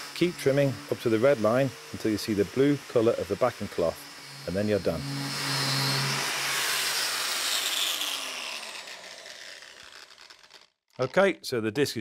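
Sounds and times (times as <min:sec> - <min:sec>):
angle grinder grinding steel: 0:00.0 - 0:11.2.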